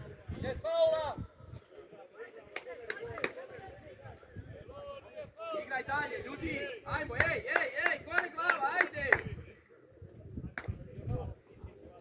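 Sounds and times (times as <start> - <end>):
sharp claps: 2.5 - 3.4, 7.1 - 9.3.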